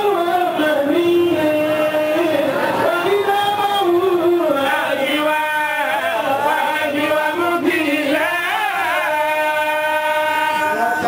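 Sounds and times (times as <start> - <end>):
person chanting: 0.0 - 11.0.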